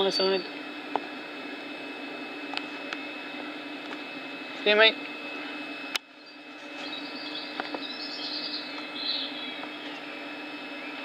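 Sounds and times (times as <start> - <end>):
faint high whine: 0.0 - 11.0
train electrical hum: 0.0 - 11.0.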